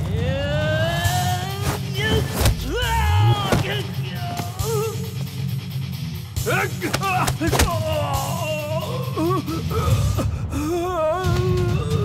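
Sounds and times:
heavy bass: 0.0 - 11.8
wavering voice: 6.5 - 9.8.

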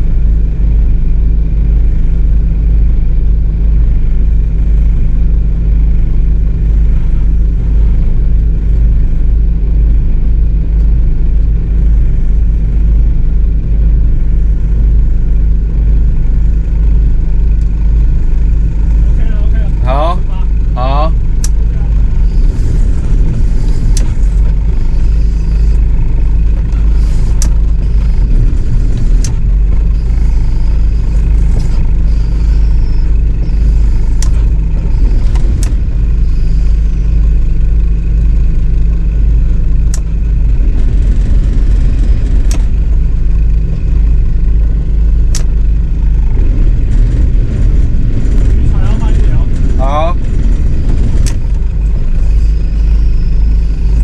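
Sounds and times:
boat engine idling: 0.0 - 54.0
sharp clicks: 21.4 - 21.6, 22.2 - 35.9, 40.7 - 42.8, 45.3 - 45.5, 46.5 - 53.0
brief rising squeaks: 22.0 - 37.1, 46.5 - 54.0.

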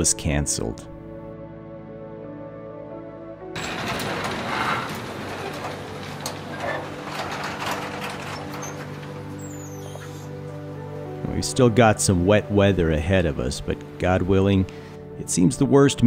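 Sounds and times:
soft ambient music: 0.0 - 16.0.

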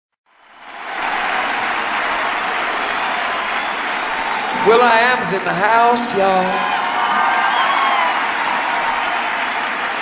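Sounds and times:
audience applause: 0.3 - 10.0.

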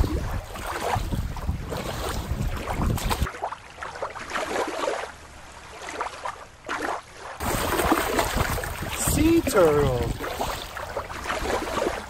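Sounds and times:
wind buffeting microphone: 0.0 - 3.3, 7.4 - 12.0
small waves lapping: 0.0 - 12.0.

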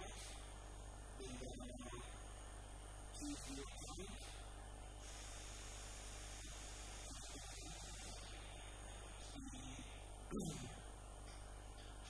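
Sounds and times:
electrical mains hum: 0.0 - 12.0
faint high whine: 0.0 - 12.0.

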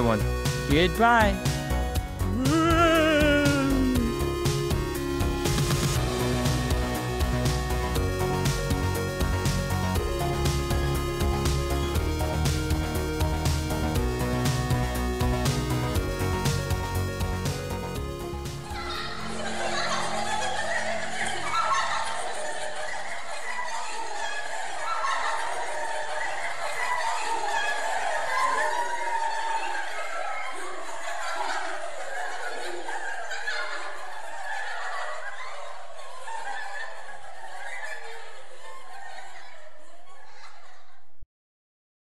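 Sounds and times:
demonic cackling voices: 1.4 - 9.3, 18.6 - 37.3.

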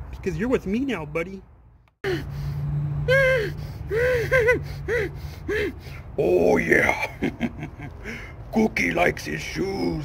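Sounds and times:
man's drawn-out vocal cry: 3.0 - 5.8.

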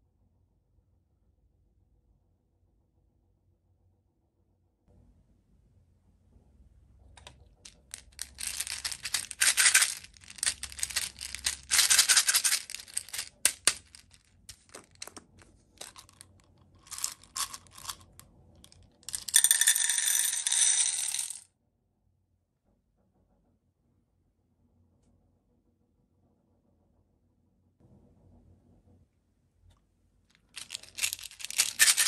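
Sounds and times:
plastic beads clattering into metal tin: 7.2 - 18.2, 19.0 - 21.4, 30.5 - 32.0.

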